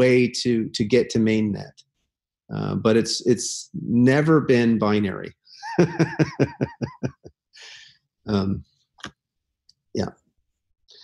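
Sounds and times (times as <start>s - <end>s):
person laughing: 5.6s - 7.3s
breath: 7.6s - 8.1s.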